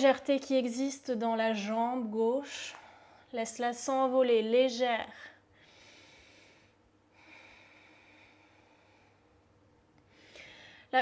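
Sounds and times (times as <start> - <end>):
faint breathing through nose: 5.6 - 9.3, 10.1 - 10.9.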